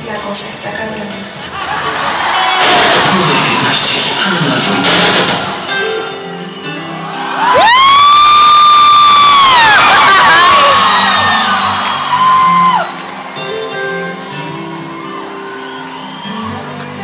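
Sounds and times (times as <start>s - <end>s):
concert music: 0.0s - 17.0s
crowd noise: 0.0s - 17.0s
loud high cheer: 1.6s - 4.2s, 4.8s - 17.0s.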